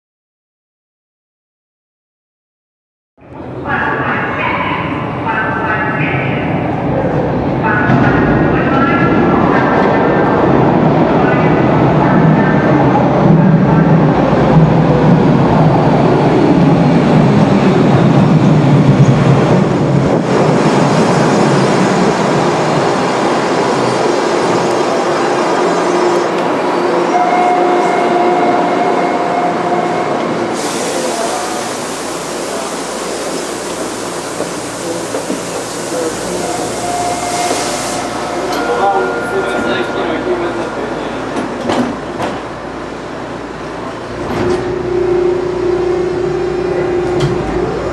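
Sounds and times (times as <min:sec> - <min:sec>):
subway train pulling in: 0:03.2 - 0:47.9.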